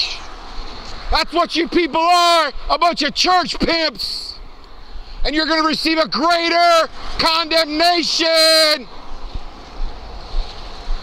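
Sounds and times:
wind rumbling on microphone: 8.9 - 11.0.

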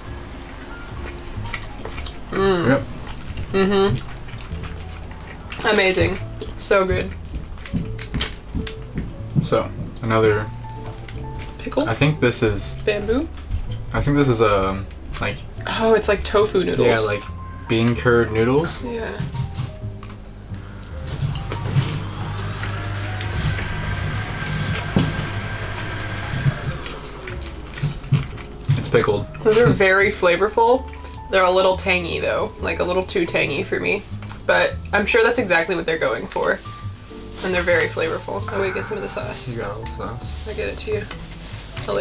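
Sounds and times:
faint background music: 0.0 - 42.0
vehicle passing: 20.4 - 30.3.

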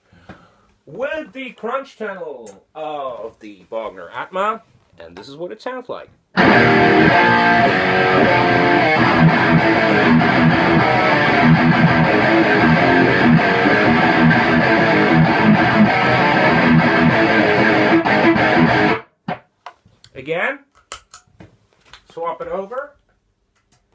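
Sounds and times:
distorted electric guitar: 6.4 - 19.4.

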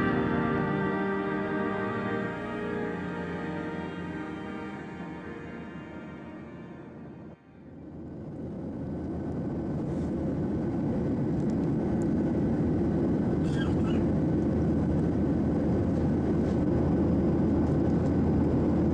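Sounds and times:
jet engine and airflow roar: 0.0 - 18.9.

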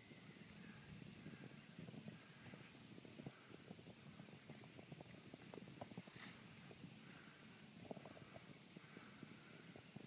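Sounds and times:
faint low crackles: 0.0 - 10.0.

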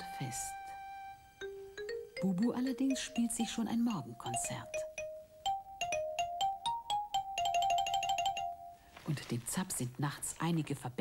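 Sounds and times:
xylophone tune: 1.4 - 8.8.

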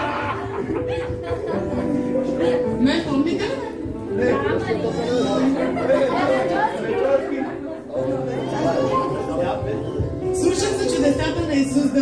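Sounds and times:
several people talking: 0.0 - 12.0.

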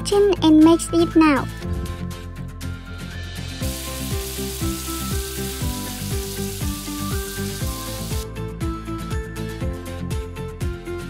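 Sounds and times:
food sizzling: 3.6 - 8.3.

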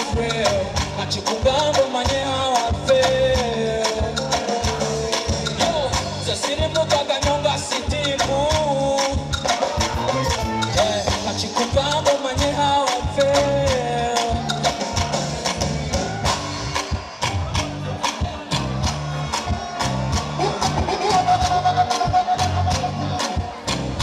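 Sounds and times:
man singing into a microphone: 0.0 - 15.4
live band music: 0.0 - 24.0.

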